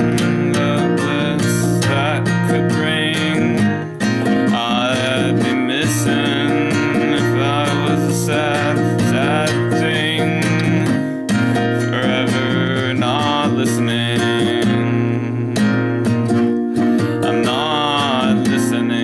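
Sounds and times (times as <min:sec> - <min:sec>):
classical guitar fingerpicked: 0:00.0 - 0:19.0.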